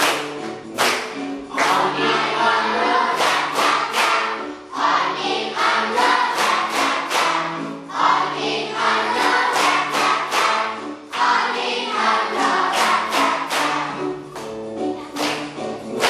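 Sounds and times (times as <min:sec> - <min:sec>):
hands clapping: 0:00.0 - 0:02.1, 0:03.0 - 0:04.5, 0:05.9 - 0:07.7, 0:09.1 - 0:11.6, 0:12.2 - 0:16.0
children singing together: 0:01.4 - 0:14.2.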